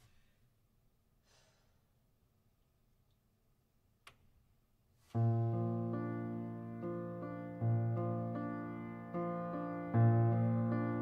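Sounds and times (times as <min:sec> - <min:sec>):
soft breath out: 0:01.2 - 0:01.9.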